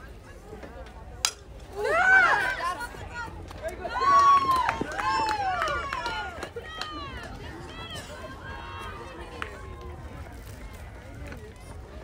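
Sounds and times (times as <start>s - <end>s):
players shouting and cheering: 1.6s - 11.5s.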